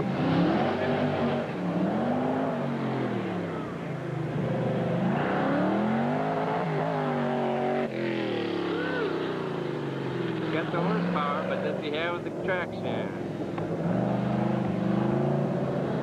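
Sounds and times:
car engine revving: 0.0s - 16.0s.

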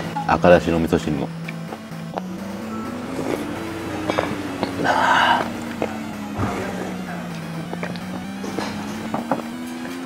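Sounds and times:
background music slow held notes: 0.0s - 10.0s.

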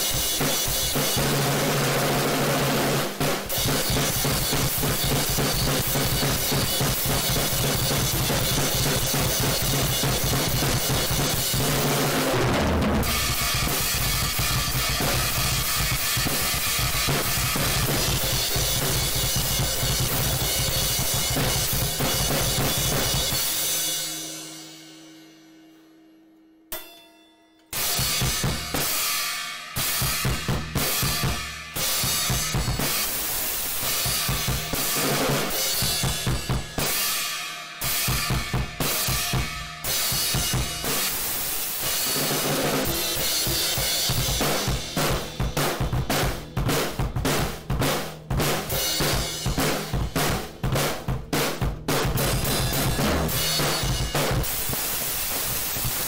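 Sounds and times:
fast drum kit playing: 0.0s - 24.6s, 27.7s - 56.0s.

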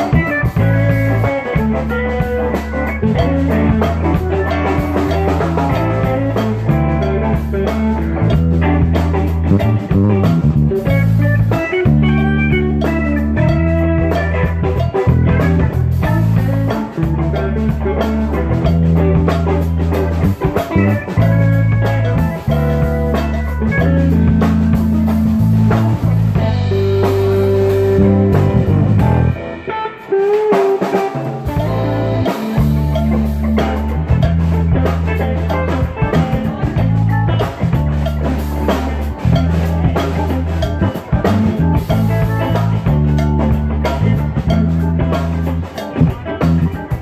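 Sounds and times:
band playing bluesy groove: 0.0s - 47.0s.

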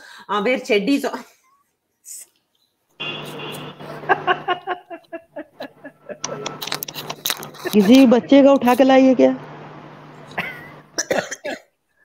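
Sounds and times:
woman coughing: 10.4s - 11.7s.

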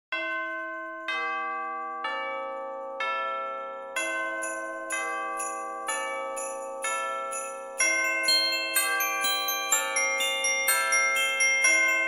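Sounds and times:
ringing bell notes: 4.0s - 12.0s.

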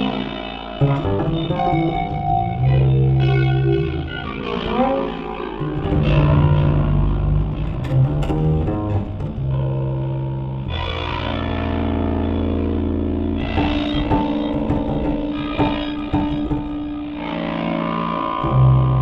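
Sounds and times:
electric guitar through effects: 0.0s - 19.0s
low double bass notes: 0.0s - 19.0s.

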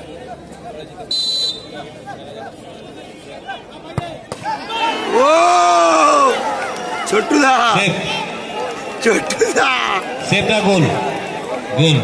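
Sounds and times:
crowd chattering: 0.0s - 12.0s
crowd shouting: 0.0s - 12.0s
referee's whistle blast: 1.1s - 1.7s.

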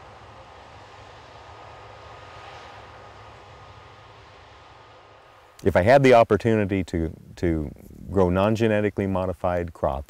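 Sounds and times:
distant combine harvester drone: 0.0s - 10.0s.

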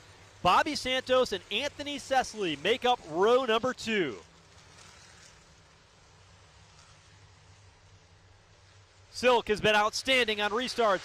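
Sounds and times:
low hum of race cars: 0.0s - 11.0s
light hiss: 4.2s - 9.1s.

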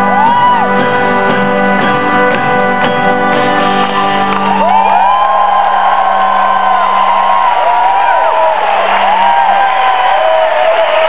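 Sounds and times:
audience whoops: 0.0s - 0.7s, 4.0s - 11.0s.

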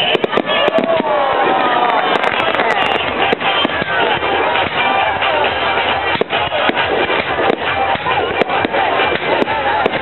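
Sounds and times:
fireworks bangs and crackles: 0.0s - 10.0s.

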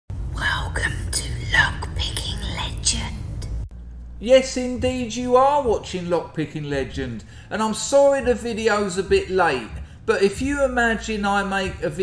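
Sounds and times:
low background music: 0.1s - 12.0s
person whispering: 0.4s - 3.5s.

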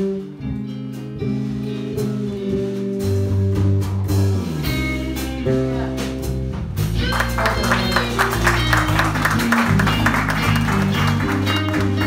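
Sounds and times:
bass guitar: 0.0s - 12.0s
drums and cymbals: 0.0s - 12.0s
electric guitar: 0.0s - 12.0s.

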